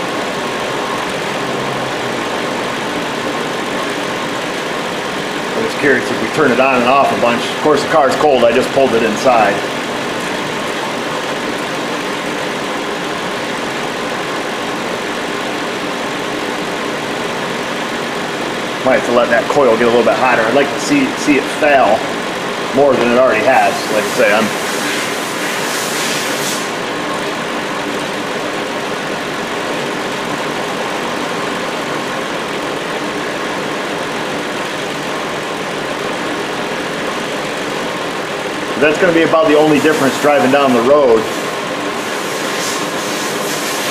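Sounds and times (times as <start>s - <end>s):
car engine idling: 0.0s - 24.7s.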